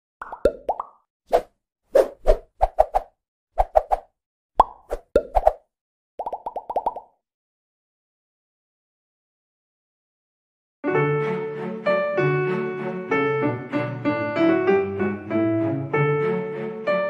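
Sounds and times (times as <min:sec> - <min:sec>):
cartoon pop sound effects: 0:00.2 - 0:01.0, 0:04.6 - 0:05.6, 0:06.2 - 0:07.1.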